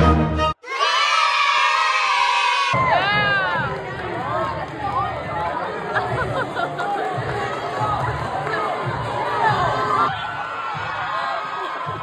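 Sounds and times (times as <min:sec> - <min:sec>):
music playing: 0:00.0 - 0:00.6
crowd talking and calling out: 0:00.7 - 0:12.0.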